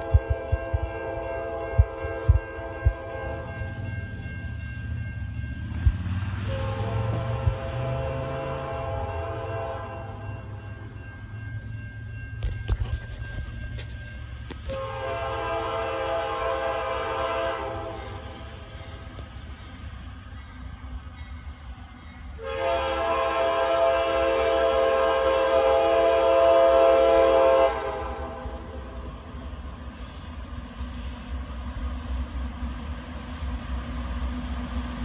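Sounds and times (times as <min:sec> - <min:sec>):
locomotive air horn blasts: 0:00.0 - 0:03.7, 0:06.4 - 0:10.3, 0:14.6 - 0:19.1, 0:22.4 - 0:28.9.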